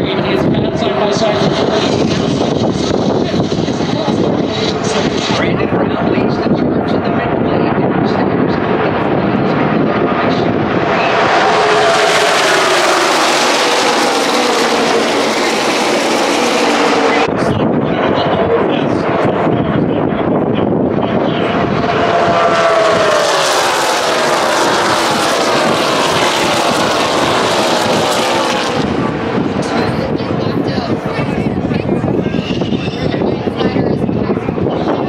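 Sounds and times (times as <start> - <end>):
crowd voices hubbub: 0.0 - 23.3, 25.5 - 35.0
race cars passing at speed: 0.0 - 33.3
wind on microphone: 0.0 - 35.0.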